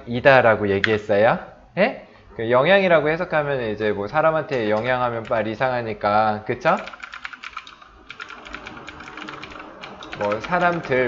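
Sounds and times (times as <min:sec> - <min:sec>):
typing on computer keyboard: 0:06.7 - 0:11.0.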